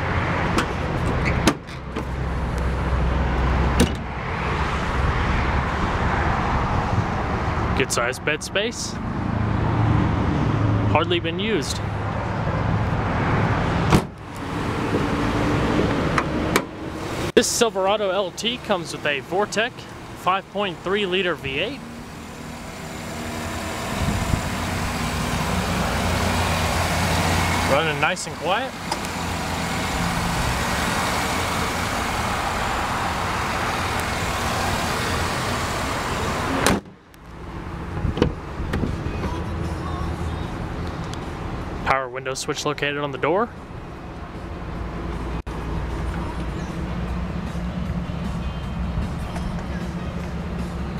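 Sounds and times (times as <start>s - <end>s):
car hood shutting with a bang: 3.8s - 4.1s, 13.9s - 14.2s, 36.6s - 37.0s
engine idling: 17.5s - 36.6s.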